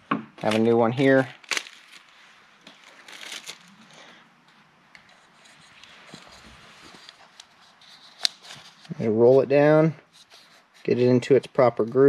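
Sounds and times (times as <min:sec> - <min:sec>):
plastic packet crinkling: 0:00.4 - 0:04.2.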